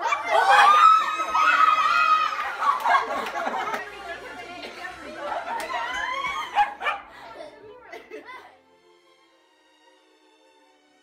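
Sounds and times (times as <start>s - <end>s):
small dog barking: 6.5s - 7.1s.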